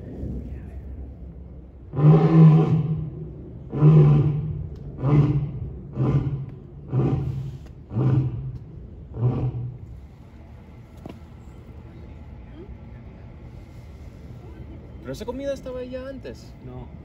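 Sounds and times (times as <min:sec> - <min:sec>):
lion roaring: 0:01.9 - 0:03.1, 0:03.7 - 0:08.5, 0:09.1 - 0:09.8.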